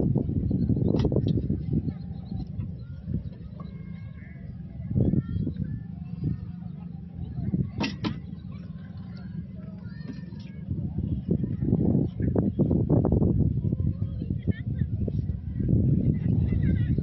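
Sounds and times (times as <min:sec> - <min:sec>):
low rumble: 0:00.0 - 0:17.0.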